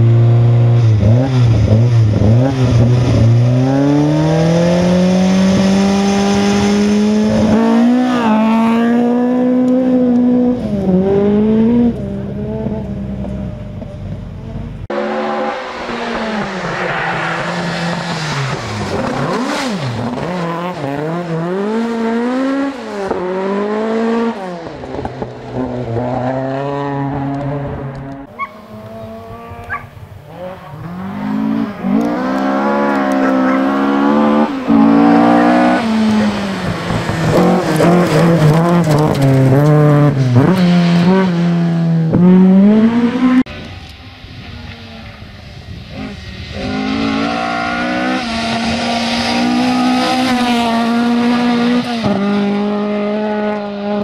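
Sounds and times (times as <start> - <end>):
rally car engine revving: 0.0 - 43.8, 45.9 - 54.0.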